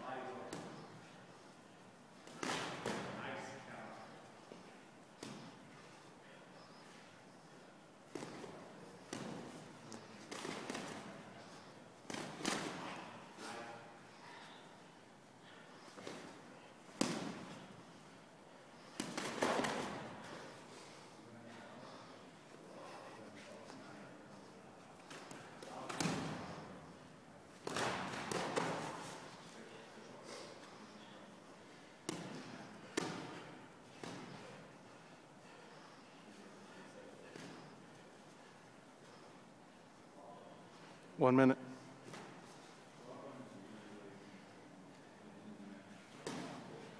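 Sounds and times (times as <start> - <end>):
boxing gloves thudding: 17.0 - 17.7, 19.0 - 20.3, 25.1 - 26.5, 27.6 - 29.1.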